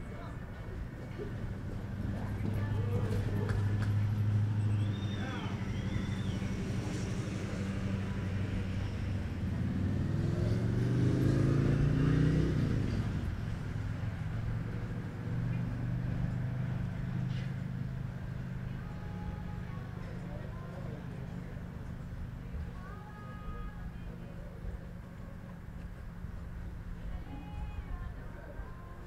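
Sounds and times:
vehicle engine running: 0.0s - 27.4s.

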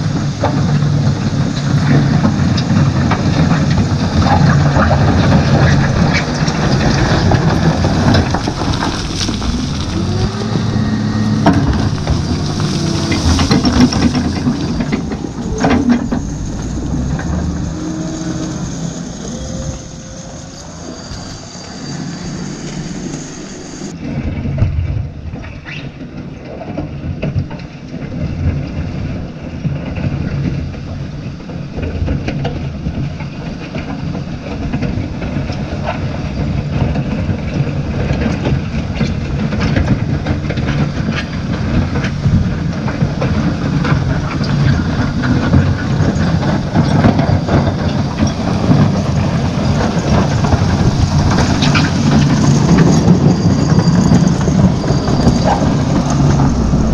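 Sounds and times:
diesel engine under load: 0.0s - 56.9s
stones crunching: 4.4s - 17.8s.

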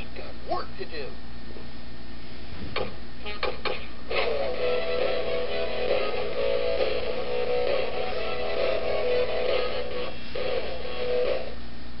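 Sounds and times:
tinny electronic toy tune: 4.2s - 11.6s.

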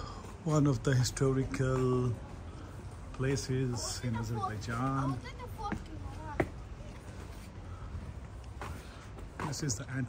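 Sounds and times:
people talking: 3.1s - 7.3s.

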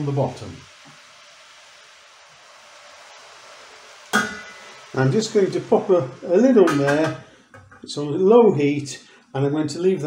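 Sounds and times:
mushrooms sizzling in butter: 0.0s - 8.4s
metal lid clinking: 4.2s - 4.7s.

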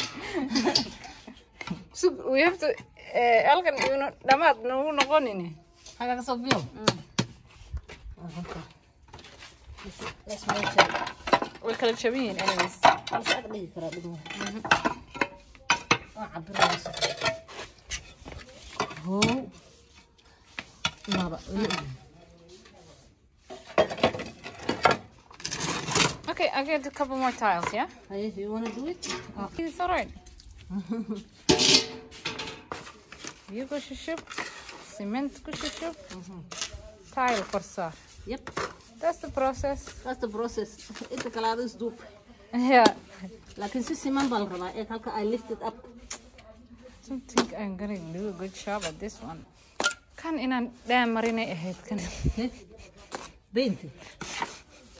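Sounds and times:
trowel scraping mortar in a bucket: 0.4s - 54.9s
scraping and clinking of tiles: 8.4s - 19.6s, 20.7s - 22.1s, 23.5s - 29.9s.

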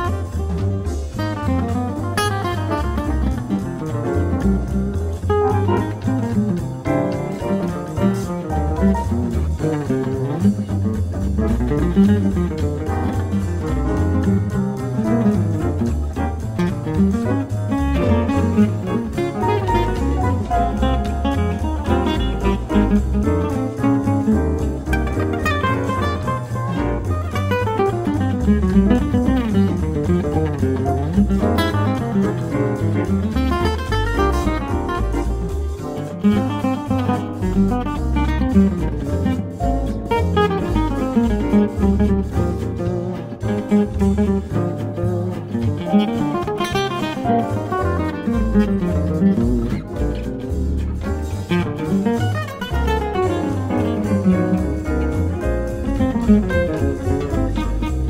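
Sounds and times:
instrumental swing jazz: 0.0s - 58.0s.

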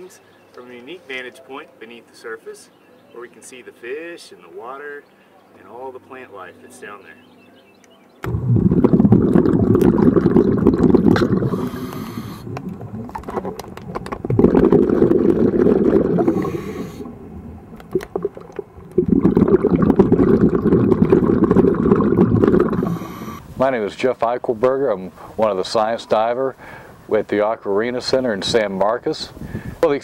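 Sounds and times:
exhaled bubbles underwater: 8.2s - 23.4s
regulator inhaling hiss: 11.4s - 12.6s, 16.2s - 17.2s, 22.8s - 23.6s.

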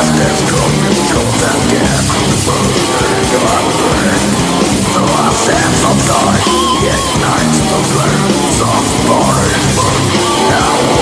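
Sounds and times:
distorted electric guitar riffing: 0.0s - 11.0s
drums: 0.0s - 11.0s
harsh yelled vocals: 0.0s - 11.0s.

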